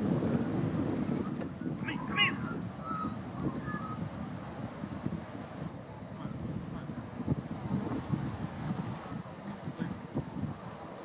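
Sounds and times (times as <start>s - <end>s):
bird call: 1.9s - 4.0s.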